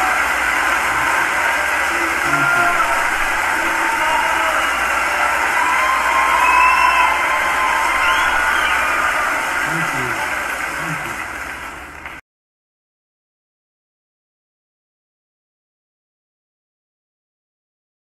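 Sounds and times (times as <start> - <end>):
audience applauding and cheering: 0.0 - 12.2
whoops and shouts: 0.8 - 10.1.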